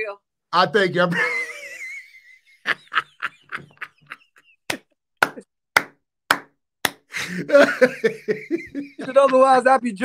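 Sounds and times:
man laughing in breathy bursts: 1.1 - 4.8, 7.1 - 9.5.

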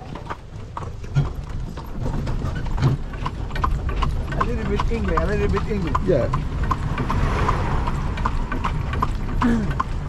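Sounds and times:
cart rumbling: 0.0 - 10.0
horse hooves clip-clopping: 0.0 - 10.0.

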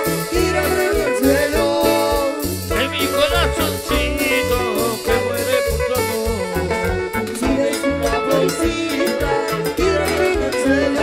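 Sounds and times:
live cumbia band music: 0.0 - 11.0.

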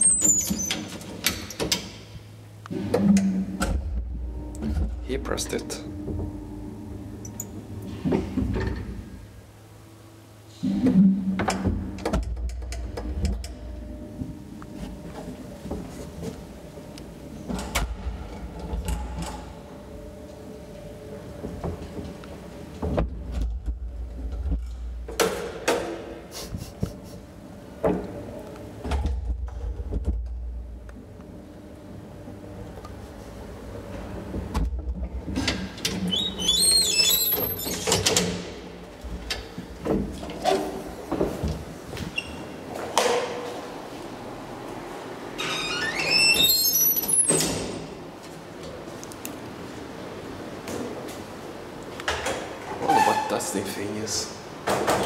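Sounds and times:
gate squealing screeches: 0.0 - 0.9, 36.1 - 37.9, 45.4 - 47.8, 52.8 - 53.5.

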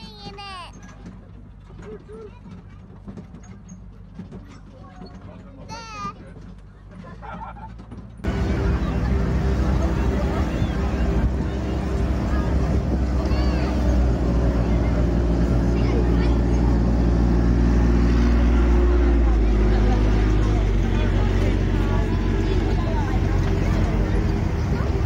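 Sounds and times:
land train engine running: 5.5 - 25.0.

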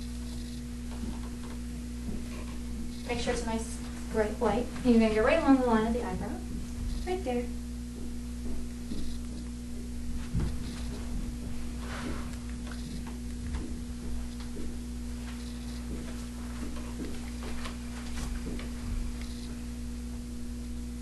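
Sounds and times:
electrical hum: 0.0 - 21.0.

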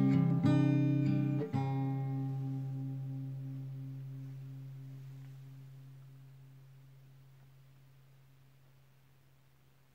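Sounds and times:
acoustic guitar low note ringing: 0.0 - 8.9.

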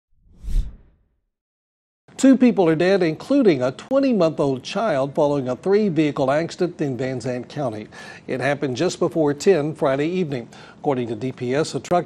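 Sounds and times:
whoosh sound effect: 0.2 - 1.0.

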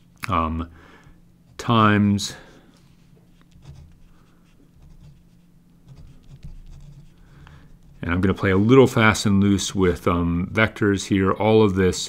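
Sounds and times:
pen scratching on paper: 3.5 - 7.2.

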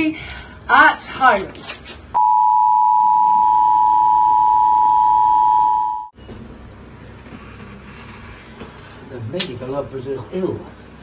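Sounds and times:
two-tone emergency alert signal: 2.2 - 6.1.

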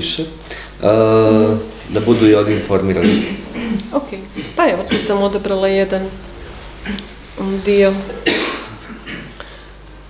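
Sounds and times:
person coughing: 2.4 - 5.4, 8.0 - 9.6.

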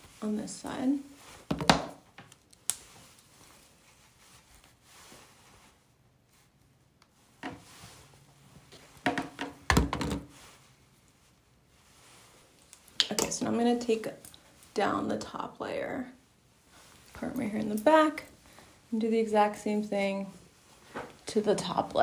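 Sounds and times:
woman's voice: 0.2 - 1.1, 13.0 - 14.2, 14.8 - 16.2, 17.2 - 20.4, 21.3 - 22.0.

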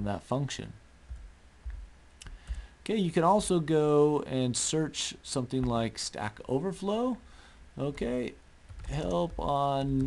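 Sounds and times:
low dull bumps: 1.0 - 2.6
computer clicks: 1.1 - 2.7.

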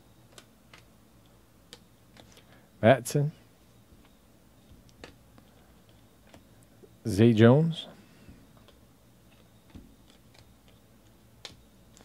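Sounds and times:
trading cards flipped through: 1.7 - 2.5.

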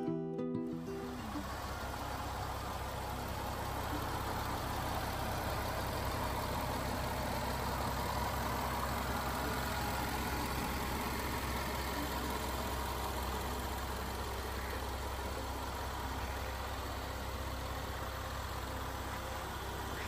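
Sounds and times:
car engine idling: 0.7 - 20.0.

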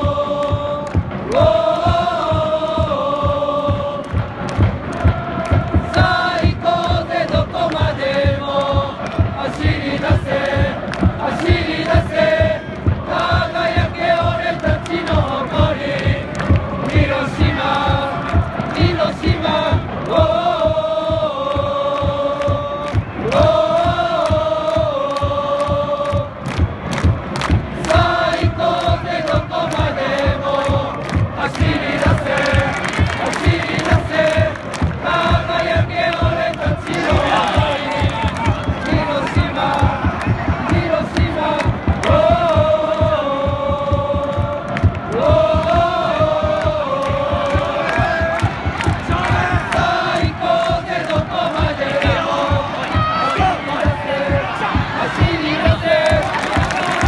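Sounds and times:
crowd chanting in unison: 0.0 - 57.0
steady drumbeat: 0.0 - 57.0.

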